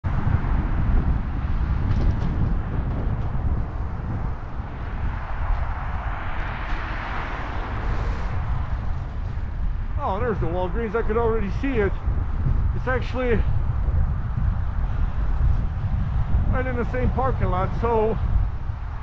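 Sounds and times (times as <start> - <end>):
road traffic: 0.0 - 19.0
wind rumbling on microphone: 0.0 - 19.0
car passing by: 1.5 - 10.6.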